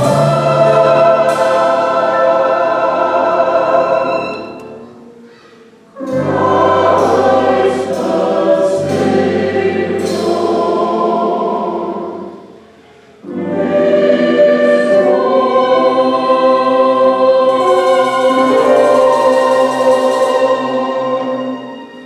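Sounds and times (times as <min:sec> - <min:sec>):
mixed choir singing: 0:00.0 - 0:05.2, 0:05.9 - 0:22.0.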